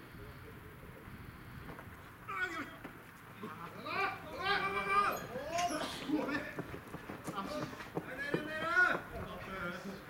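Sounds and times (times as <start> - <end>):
baseball players shouting: 2.2 - 2.9, 3.6 - 9.5.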